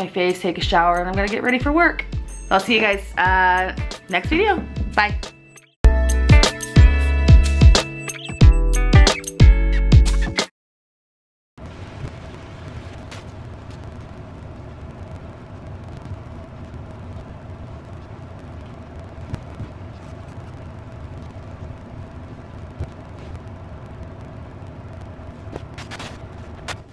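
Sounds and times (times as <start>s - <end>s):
faint constant whine: 11.6s - 26.9s
low room rumble: 11.6s - 26.9s.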